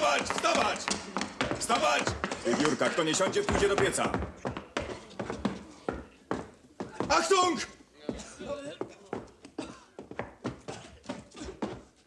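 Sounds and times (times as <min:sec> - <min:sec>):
footsteps on plank floor: 0:00.0 - 0:12.0.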